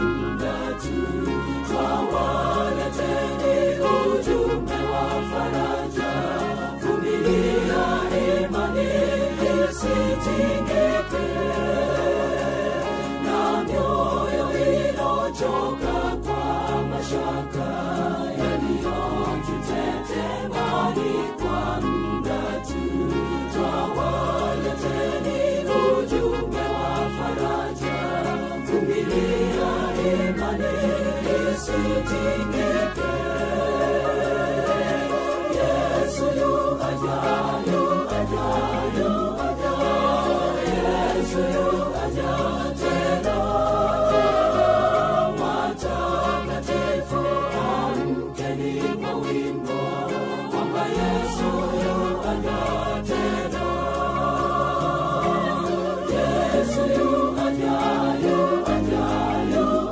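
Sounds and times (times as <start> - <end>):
gospel choir singing: 0.0 - 59.9.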